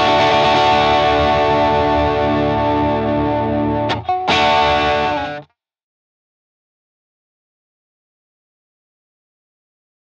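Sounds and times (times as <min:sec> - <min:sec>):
overdriven electric guitar chord: 0:00.0 - 0:05.5.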